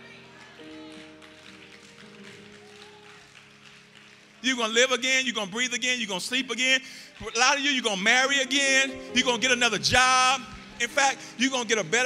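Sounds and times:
soft keyboard chords: 0:07.9 - 0:12.0.

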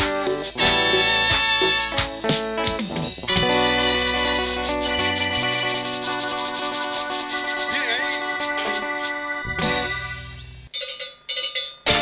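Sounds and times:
cumbia band playing: 0:00.0 - 0:10.4
metal cowbell strokes: 0:03.6 - 0:08.2, 0:10.7 - 0:12.0.

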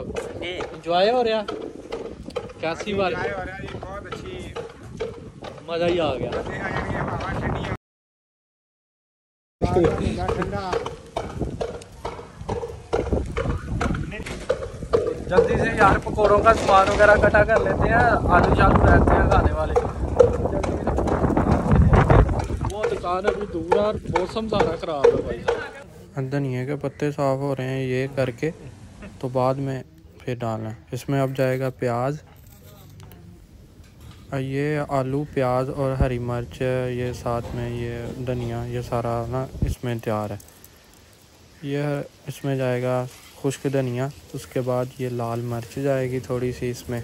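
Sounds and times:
wind rumbling on microphone: 0:00.0 - 0:07.8, 0:09.6 - 0:25.9, 0:33.0 - 0:42.3.

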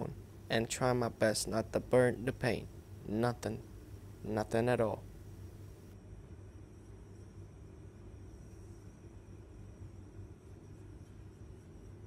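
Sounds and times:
faint steady hiss: 0:00.0 - 0:12.0
thin high whine: 0:00.0 - 0:12.0.

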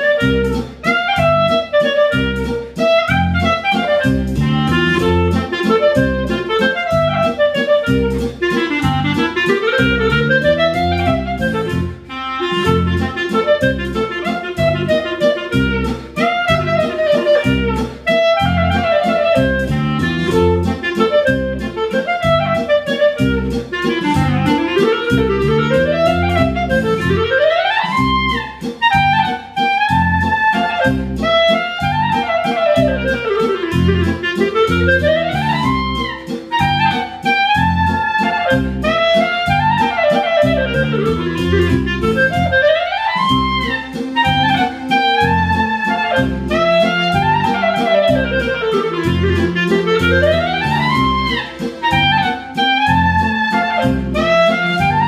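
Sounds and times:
accompaniment with low beat: 0:00.0 - 0:55.0
clarinet playing a waltz: 0:00.0 - 0:55.0.

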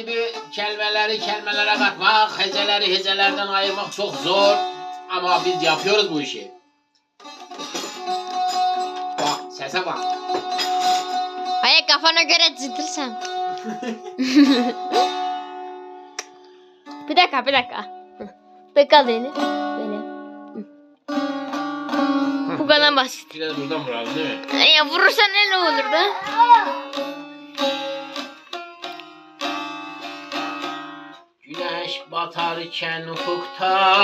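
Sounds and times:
long-necked lute chords: 0:00.0 - 0:34.0
saz strummed: 0:00.0 - 0:34.0.

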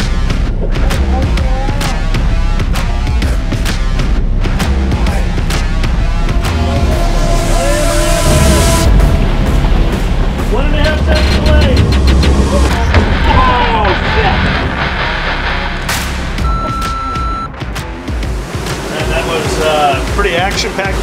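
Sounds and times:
boat engines rumbling: 0:00.0 - 0:21.0
music: 0:00.0 - 0:21.0
churning water: 0:04.7 - 0:14.9, 0:15.9 - 0:21.0
short steady beep: 0:16.4 - 0:17.6.

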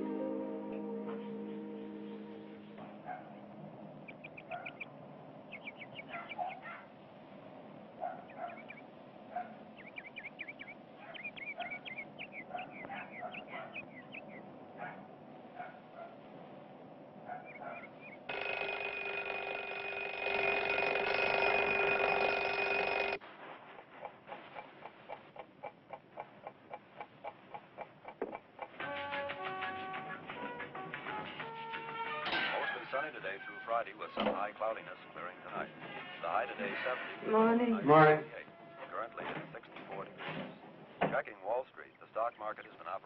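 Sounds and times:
birds chirping: 0:00.8 - 0:16.3, 0:17.2 - 0:18.6
regular ticking: 0:18.2 - 0:23.2
fowl clucking: 0:23.8 - 0:30.2.

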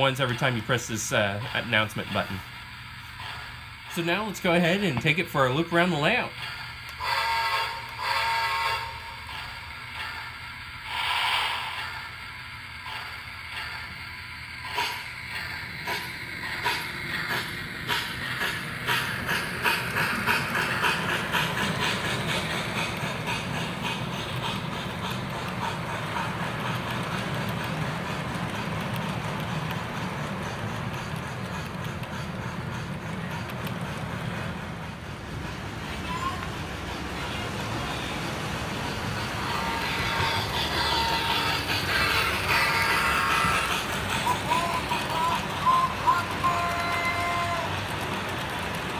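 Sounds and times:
model train wheels rumbling: 0:00.0 - 0:48.9
steam locomotive chuffing: 0:00.0 - 0:48.9.

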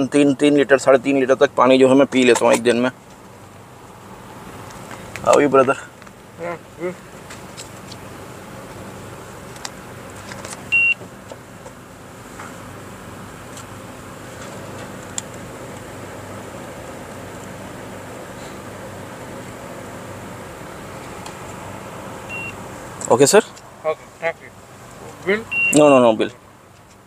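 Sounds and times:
low hum inside car: 0:00.0 - 0:27.0
card terminal beep: 0:10.7 - 0:11.0, 0:22.3 - 0:22.6, 0:25.5 - 0:25.8.

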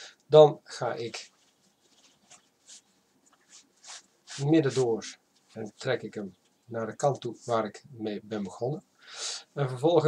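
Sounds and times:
necktie fabric rustling: 0:01.0 - 0:07.4.

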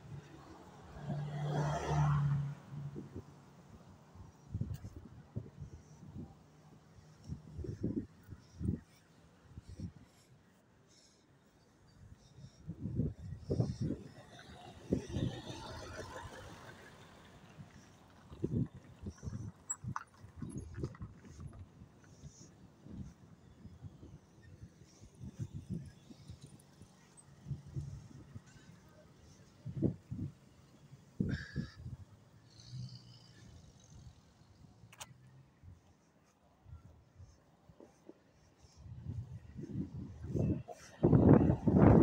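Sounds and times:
car driving past: 0:00.6 - 0:03.0
bus driving past: 0:13.9 - 0:19.0.

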